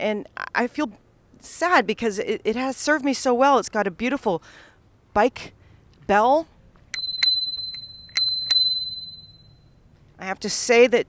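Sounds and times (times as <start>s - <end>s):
bicycle bell ringing: 6.9s - 9.7s.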